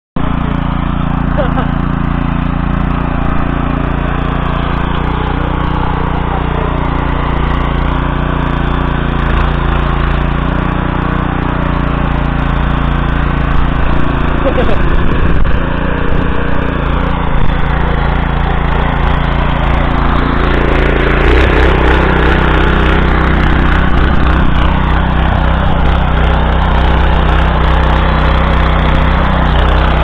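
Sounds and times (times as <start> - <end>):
cutters churning wet soil: 0.2 - 30.0
tiller engine running: 0.2 - 30.0.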